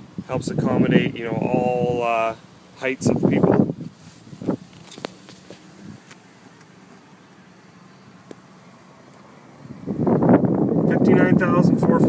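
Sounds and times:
car interior background noise: 0.0 - 12.0.

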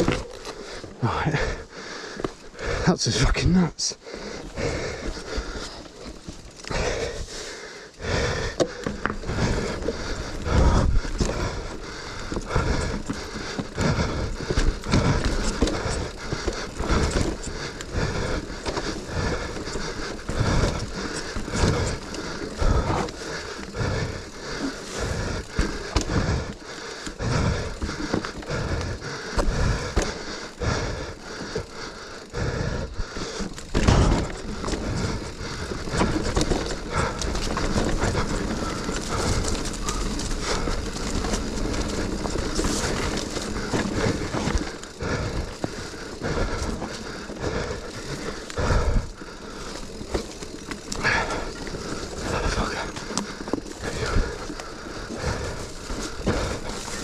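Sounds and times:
bike knocking and rattling: 0.0 - 57.0
tyre rumble on dirt: 33.7 - 45.7.

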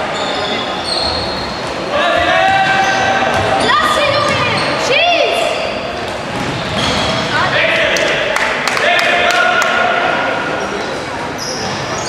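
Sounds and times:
sports shoes squeaking on floor: 0.0 - 7.4, 11.3 - 12.0.

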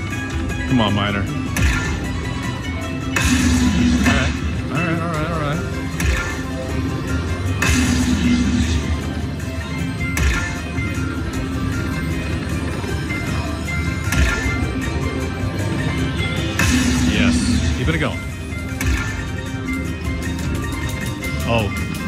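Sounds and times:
slot machine bonus music: 0.0 - 22.0.

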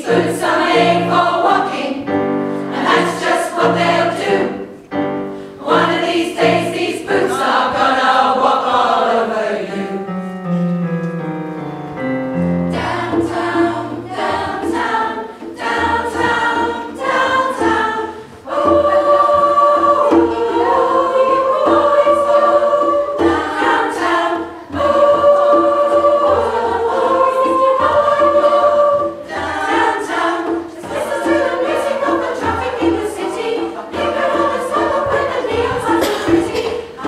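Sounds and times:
women's choir singing: 0.0 - 10.2, 12.7 - 37.0.

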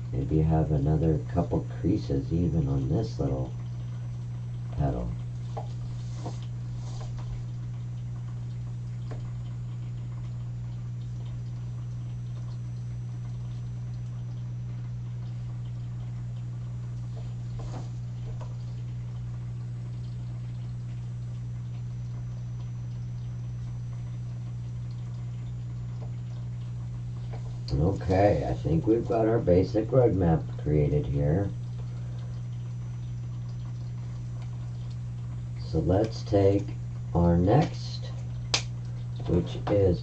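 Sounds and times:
low electrical hum: 0.0 - 40.0.

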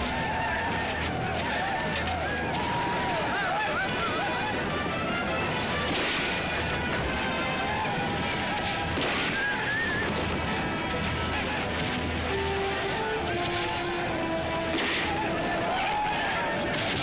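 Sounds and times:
battle noise: 0.0 - 17.0
film score music: 0.0 - 17.0.

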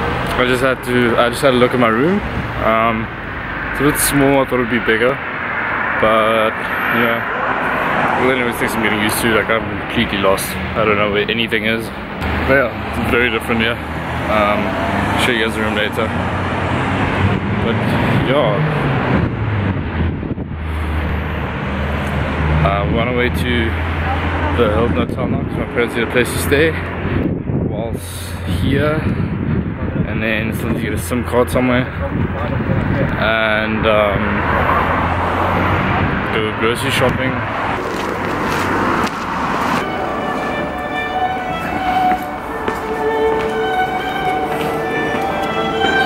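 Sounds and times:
road traffic hum: 0.0 - 46.0
music with long held notes: 39.8 - 46.0.

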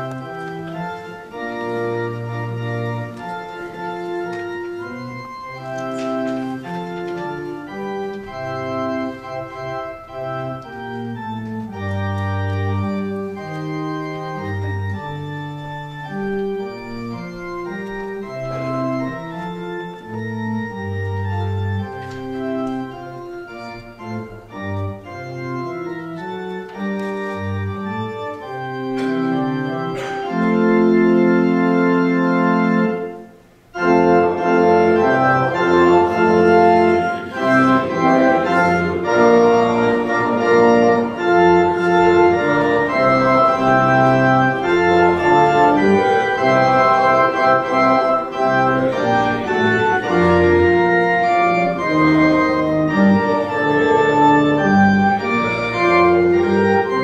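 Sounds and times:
church organ playing a hymn: 0.0 - 57.0.

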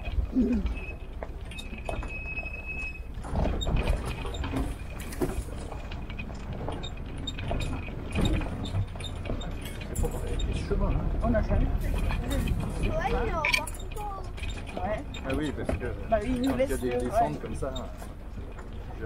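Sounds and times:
jeep engine rumble: 0.0 - 19.0
loose gear rattling and clinking: 0.0 - 19.0
thin steady squeal: 0.7 - 5.5, 6.7 - 18.0.

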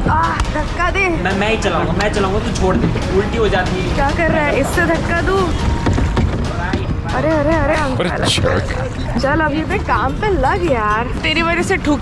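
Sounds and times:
people talking: 0.0 - 5.6, 6.5 - 12.0
water noise: 0.0 - 12.0.

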